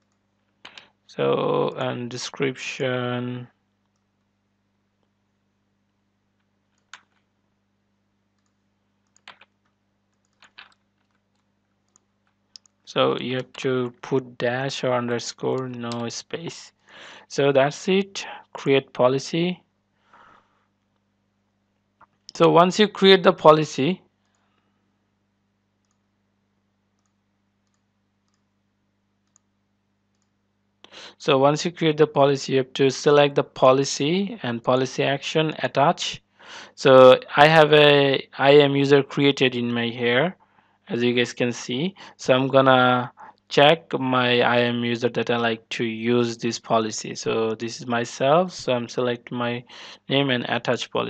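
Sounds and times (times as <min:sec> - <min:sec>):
faint low hum: 0:00.0 - 0:51.0
mouse and keyboard clicks: 0:08.4 - 0:09.6, 0:10.2 - 0:10.8
faint computer mouse clicks: 0:27.0 - 0:28.4.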